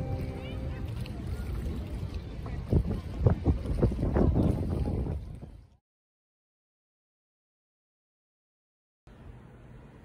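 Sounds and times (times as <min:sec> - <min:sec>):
water lapping: 0:00.0 - 0:05.8
wind rumbling on microphone: 0:00.0 - 0:05.8.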